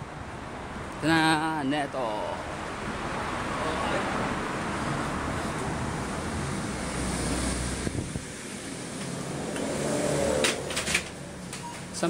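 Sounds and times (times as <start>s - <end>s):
low street and wind rumble: 0.0s - 12.0s.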